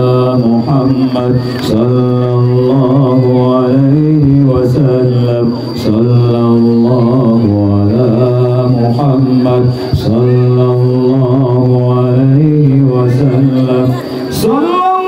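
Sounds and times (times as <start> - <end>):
man chanting over loudspeaker: 0.0 - 15.0.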